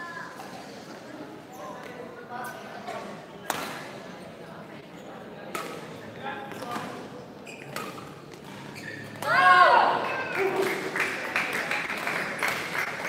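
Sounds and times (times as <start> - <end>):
racket hitting shuttlecock: 3.5 - 3.8, 5.5 - 5.9, 7.7 - 8.6.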